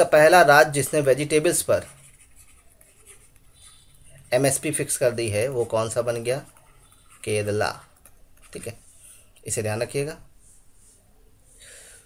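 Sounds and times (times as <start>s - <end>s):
stylus writing on tablet: 0.2s - 9.5s.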